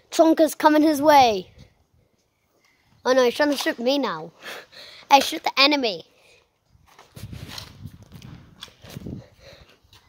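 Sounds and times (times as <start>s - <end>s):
footsteps on brick paving: 6.7s - 10.0s.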